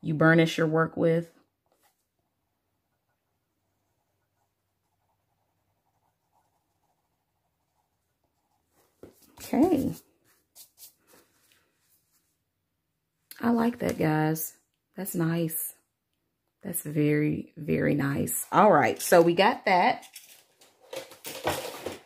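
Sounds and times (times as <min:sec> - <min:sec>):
pencil scratching on paper: 0:01.7 - 0:11.0.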